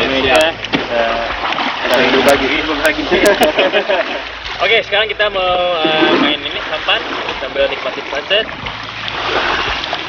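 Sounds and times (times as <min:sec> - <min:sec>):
voices talking: 0:00.0 - 0:08.7
small waves at shoreline: 0:00.0 - 0:10.0.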